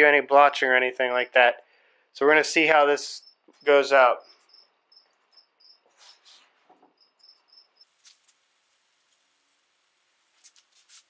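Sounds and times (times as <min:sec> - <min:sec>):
faint high-pitched chirps: 0:03.1 - 0:06.2, 0:06.9 - 0:07.9
soft rustles: 0:05.9 - 0:06.8, 0:10.3 - 0:11.0.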